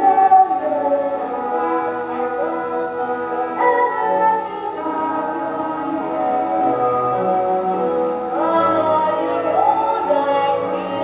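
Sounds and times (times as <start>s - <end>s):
musical theatre singing: 0.0s - 11.0s.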